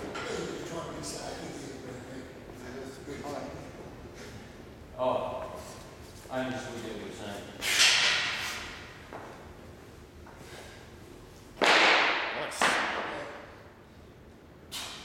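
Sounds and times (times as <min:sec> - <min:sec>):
loud sharp exhales: 0:14.7 - 0:15.0
man hissing breaths: 0:14.7 - 0:15.0.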